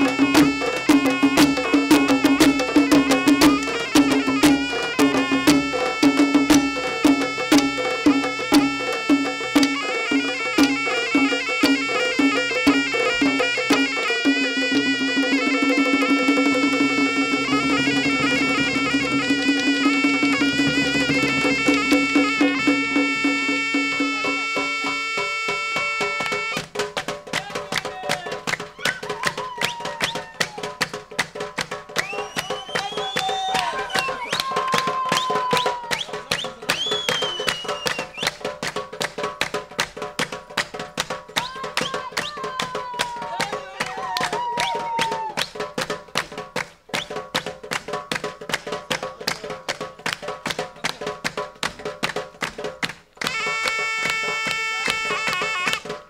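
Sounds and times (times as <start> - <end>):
shawm playing ornamented melody: 0.0 - 27.0, 53.2 - 56.0
drum strokes: 0.0 - 43.6, 44.4 - 56.0
hand-beaten metal basin percussion: 0.0 - 56.0.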